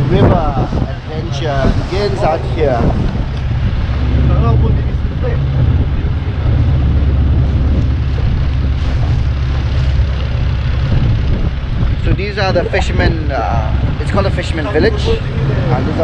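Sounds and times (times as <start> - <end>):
boat engine running: 0.0 - 16.0
water rushing past: 0.0 - 16.0
wind on microphone: 0.0 - 16.0.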